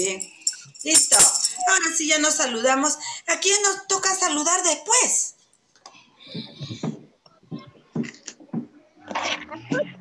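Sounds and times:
voices on a video call: 0:00.0 - 0:08.4.

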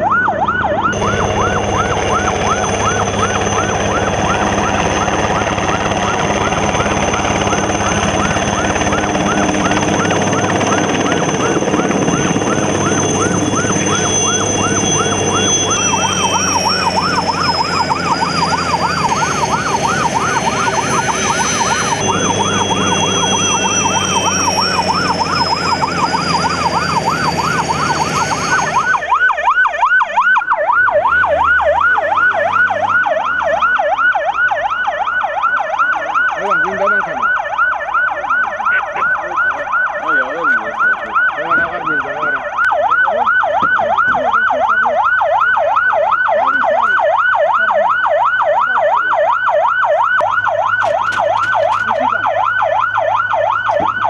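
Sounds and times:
helicopter turbine whine and rotor: 0:00.0 - 0:29.9
ambulance siren wailing: 0:00.0 - 0:54.0.

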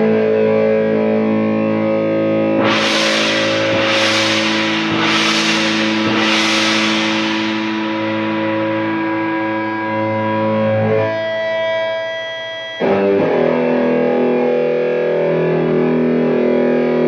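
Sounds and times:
distorted electric guitar chord: 0:00.0 - 0:11.1, 0:12.8 - 0:17.0.

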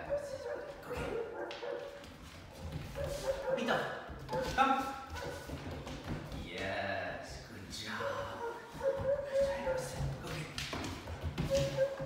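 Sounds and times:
puppy yipping and whining: 0:11.5 - 0:12.0.

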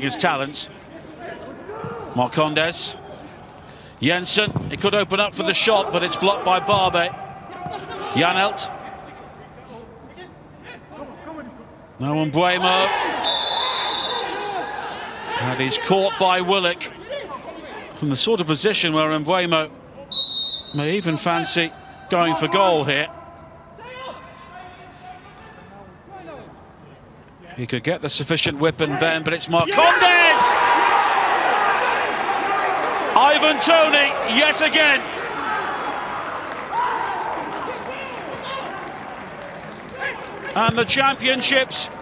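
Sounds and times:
players shouting: 0:01.0 - 0:03.5, 0:05.2 - 0:09.8, 0:12.4 - 0:18.0, 0:28.8 - 0:39.2
referee's whistle blast: 0:13.2 - 0:15.0, 0:20.1 - 0:21.5.

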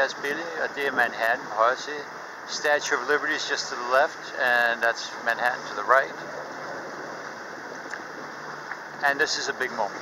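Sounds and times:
water rushing: 0:00.0 - 0:10.0
wind: 0:00.0 - 0:10.0.

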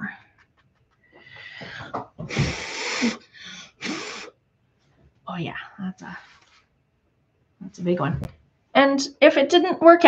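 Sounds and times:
person blowing hard through lips: 0:02.3 - 0:04.4.

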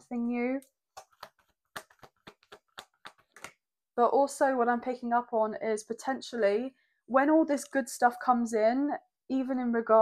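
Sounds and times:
cards being shuffled: 0:01.0 - 0:03.6.

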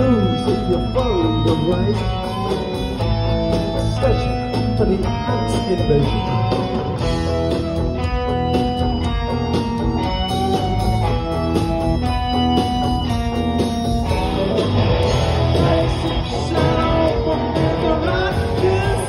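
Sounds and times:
bass guitar: 0:00.0 - 0:19.0
distorted electric guitars: 0:00.0 - 0:19.0
drums: 0:00.0 - 0:19.0.

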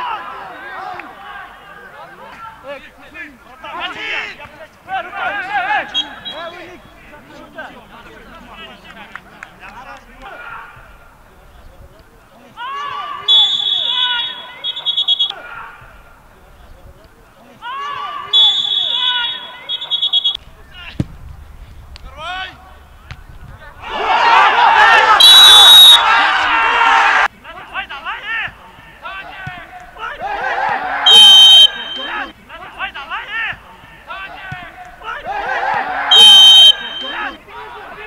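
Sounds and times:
crowd voices: 0:00.0 - 0:38.0
people shouting: 0:03.6 - 0:07.2, 0:10.2 - 0:10.9, 0:12.5 - 0:16.0, 0:17.6 - 0:20.3, 0:23.6 - 0:27.3, 0:28.1 - 0:38.0
shrill whistle blast trilling: 0:13.3 - 0:15.3, 0:18.3 - 0:20.4, 0:25.2 - 0:26.1, 0:31.1 - 0:32.3, 0:36.1 - 0:37.3.

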